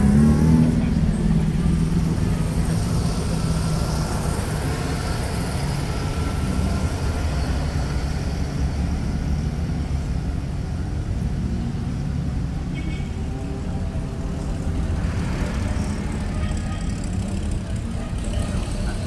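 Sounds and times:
vintage car engines passing: 0.0 - 19.0.

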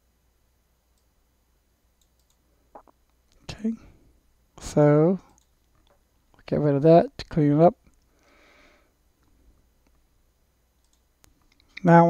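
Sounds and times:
computer mouse clicks: 2.0 - 2.4, 10.8 - 11.9
faint breath: 8.1 - 9.6.

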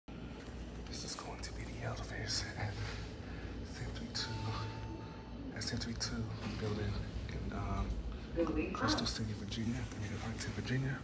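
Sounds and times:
low background hum: 0.1 - 11.0
soft whispery voice: 0.8 - 11.0.

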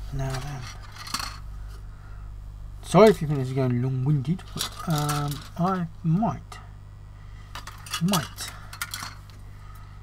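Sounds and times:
faint handling noise: 3.1 - 5.9
hard plastic clattering: 4.4 - 5.8, 7.6 - 9.4.

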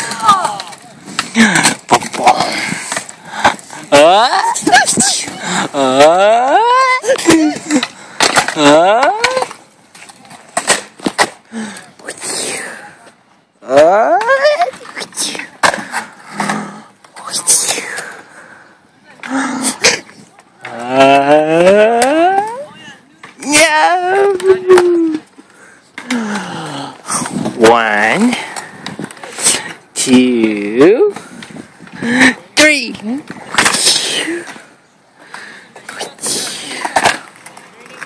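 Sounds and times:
man's drawn-out ooh: 5.7 - 7.0, 20.7 - 22.6.

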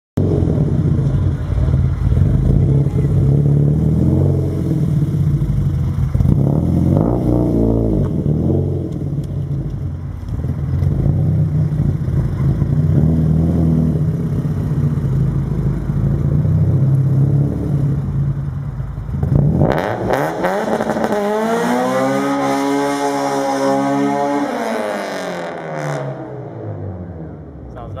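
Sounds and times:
car engine revving: 0.2 - 28.0.

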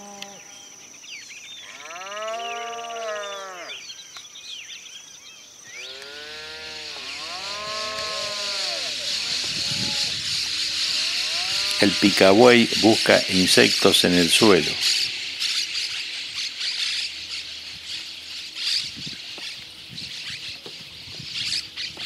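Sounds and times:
small birds chirping: 0.0 - 22.0
cattle lowing: 6.0 - 16.0.

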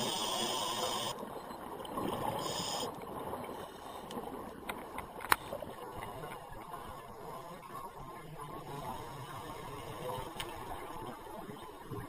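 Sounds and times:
hissing regulator inhale: 0.0 - 1.1, 2.4 - 2.9.

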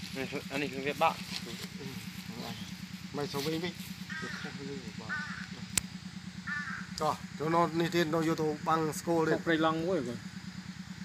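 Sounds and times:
low hum: 0.0 - 11.0
bird cawing: 3.8 - 8.1
sharp click: 5.7 - 5.9.

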